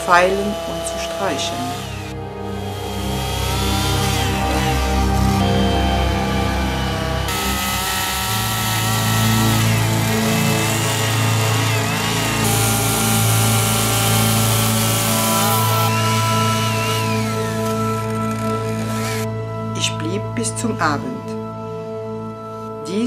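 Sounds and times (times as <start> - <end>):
chainsaw cutting wood: 0.0 - 19.3
background music: 0.0 - 23.0.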